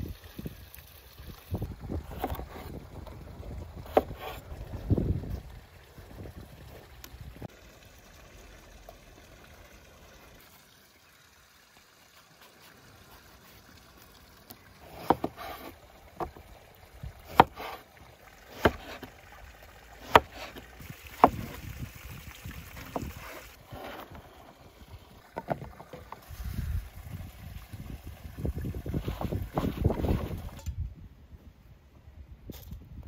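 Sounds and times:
knife chopping on wooden board: 0:17.3 - 0:17.8, 0:20.0 - 0:20.6, 0:21.2 - 0:21.5.

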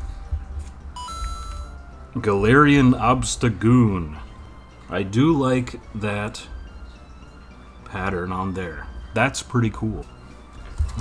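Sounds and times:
electronic two-note chime: 0:01.0 - 0:01.8.

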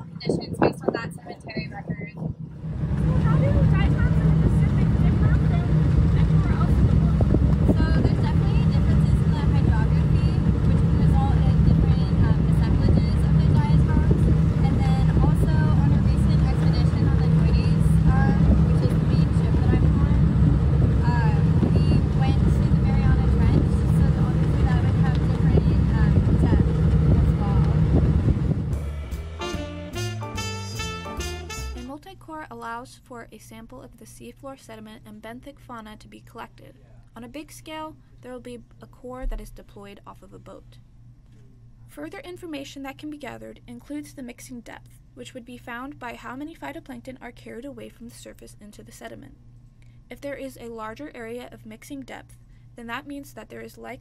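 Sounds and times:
wind buffeting microphone: 0:00.0 - 0:28.8
boat engine drone: 0:00.0 - 0:31.9.

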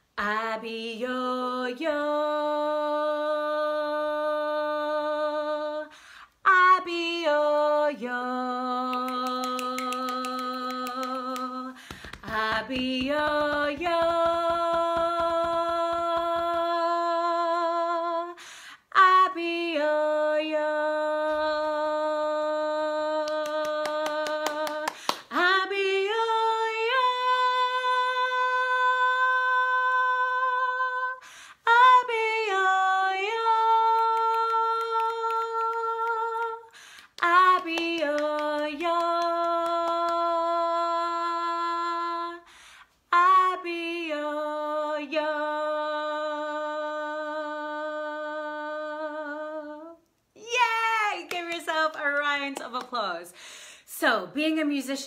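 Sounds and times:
woman singing unaccompanied: 0:00.0 - 0:53.3
singer breathing: 0:05.9 - 0:06.4, 0:11.8 - 0:12.2, 0:18.4 - 0:18.9, 0:31.2 - 0:31.6, 0:36.7 - 0:37.2, 0:42.4 - 0:43.0, 0:53.3 - 0:53.9.

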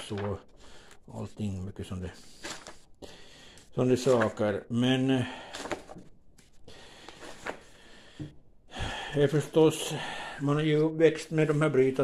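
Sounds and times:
paper page turning in a binder: 0:00.0 - 0:00.4, 0:02.2 - 0:02.9, 0:03.9 - 0:04.6, 0:05.5 - 0:07.7.

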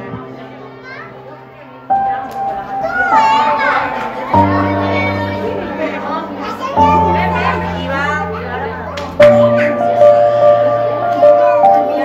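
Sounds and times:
children's voices and chatter: 0:00.0 - 0:12.0.

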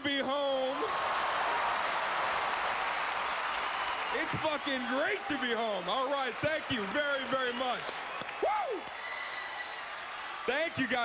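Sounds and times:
audience applauding: 0:00.5 - 0:11.0.

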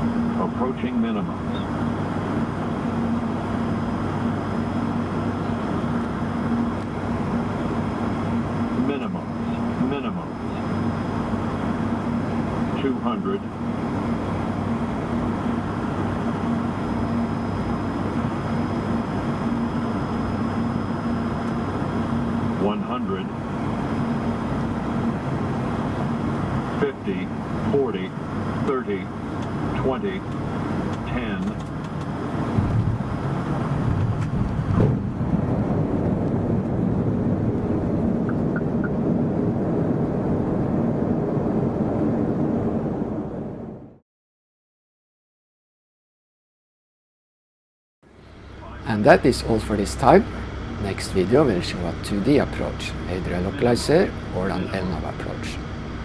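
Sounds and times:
high engine whine: 0:00.0 - 0:44.0, 0:48.0 - 0:56.0
propeller engines droning: 0:00.0 - 0:44.0, 0:48.1 - 0:56.0
wheels rumbling on runway: 0:00.0 - 0:44.0, 0:48.1 - 0:56.0
voice callouts: 0:48.6 - 0:55.6.

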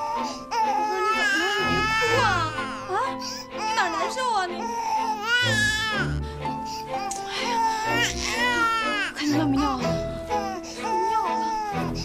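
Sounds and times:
infant crying: 0:00.0 - 0:12.0.

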